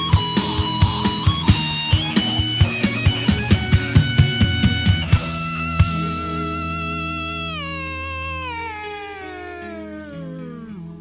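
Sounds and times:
electric guitar note sliding down: 0:00.0 - 0:11.0
steady low drone: 0:00.0 - 0:11.0.

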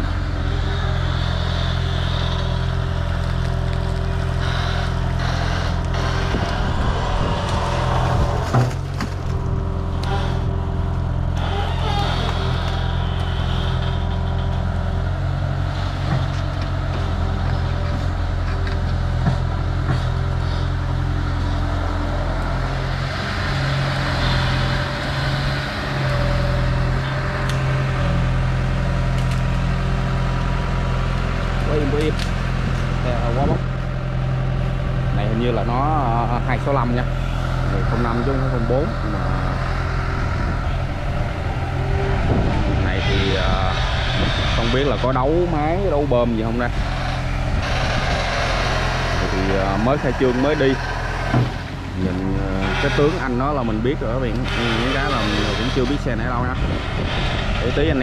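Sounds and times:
excavator diesel engine running: 0:00.0 - 0:58.0.

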